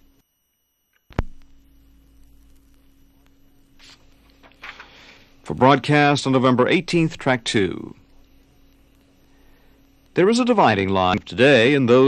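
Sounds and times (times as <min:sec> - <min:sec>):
vinyl surface noise: 0:00.0 - 0:12.0.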